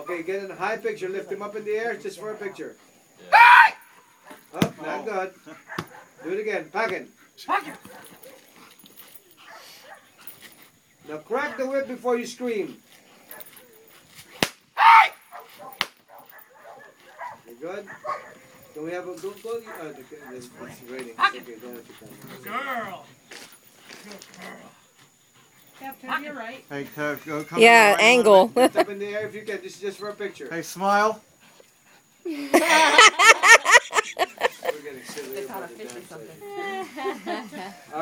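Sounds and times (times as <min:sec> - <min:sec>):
person speaking: 0:27.6 - 0:28.8.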